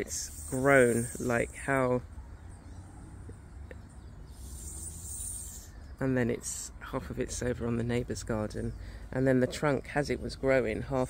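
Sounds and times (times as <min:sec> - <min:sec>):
high-pitched insect trill: 0:00.0 - 0:01.7, 0:04.3 - 0:06.0.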